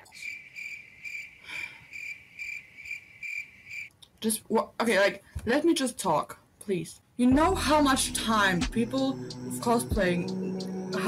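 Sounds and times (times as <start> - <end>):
crickets chirping: 0.0 - 3.9, 8.3 - 11.0.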